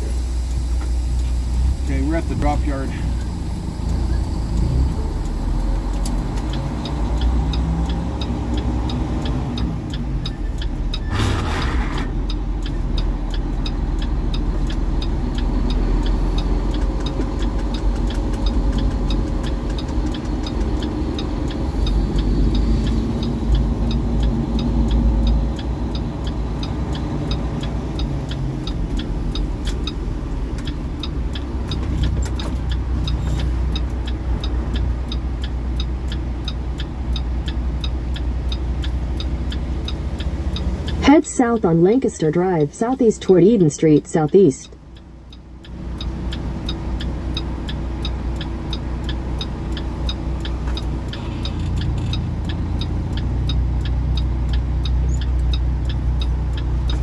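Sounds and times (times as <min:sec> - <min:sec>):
truck engine rumbling: 0:00.0 - 0:57.0
regular ticking: 0:00.2 - 0:11.3, 0:12.0 - 0:57.0.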